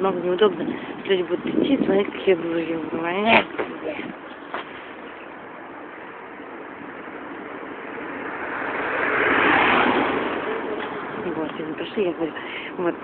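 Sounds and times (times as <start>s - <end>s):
road traffic hiss: 0.0s - 13.0s.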